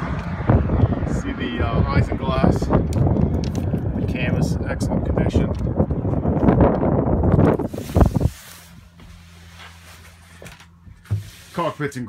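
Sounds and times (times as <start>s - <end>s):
wind buffeting microphone: 0.0s - 9.0s.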